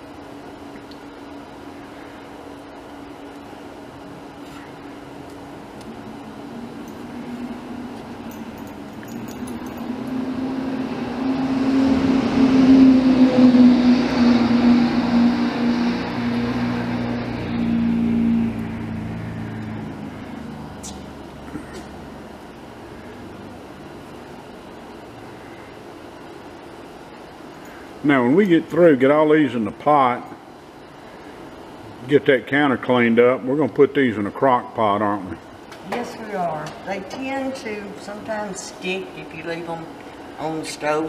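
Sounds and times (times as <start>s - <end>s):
passing vehicle engine: 6.0s - 24.2s.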